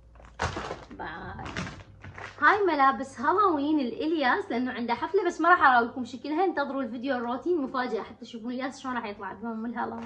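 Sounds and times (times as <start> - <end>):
plastic packaging rustling: 0.0 - 2.6
package thump: 0.2 - 2.4.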